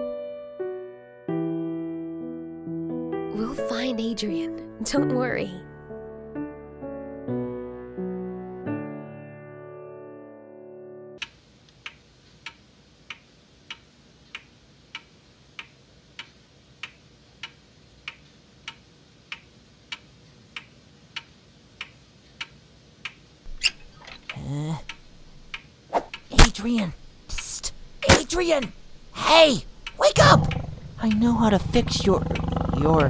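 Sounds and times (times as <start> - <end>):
background music: 0.0 - 11.2
clock ticking: 24.2 - 33.0.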